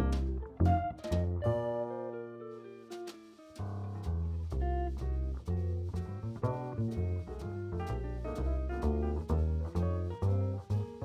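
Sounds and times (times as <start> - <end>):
plucked double bass: 0.0 - 2.2, 3.6 - 11.0
electric guitar jazz lines: 0.0 - 11.0.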